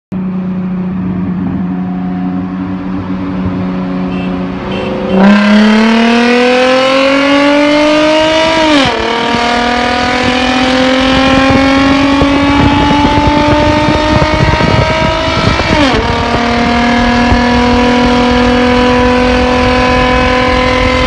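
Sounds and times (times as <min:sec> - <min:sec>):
car engine accelerating: 0:00.1 - 0:21.0.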